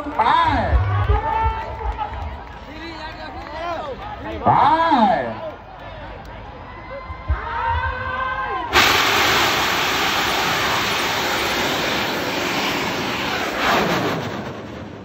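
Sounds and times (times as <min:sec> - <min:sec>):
rocket thrust roaring: 0:08.7 - 0:15.0.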